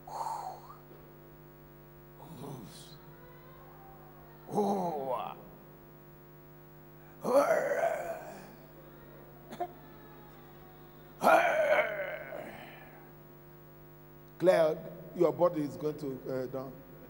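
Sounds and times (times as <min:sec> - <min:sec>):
electrical mains hum: 0:00.0 - 0:17.0
long wordless vocal cries: 0:02.2 - 0:05.6, 0:07.0 - 0:13.1.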